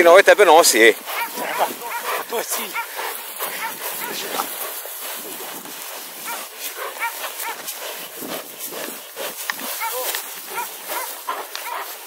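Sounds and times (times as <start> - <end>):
scuffling in dry grass: 0.0 - 12.0.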